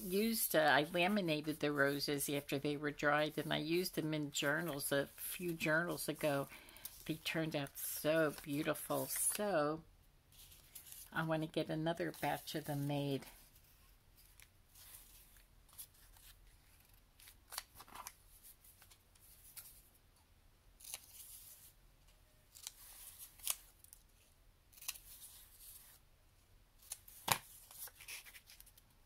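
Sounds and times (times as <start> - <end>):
scissors snipping paper: 24.7 - 25.4.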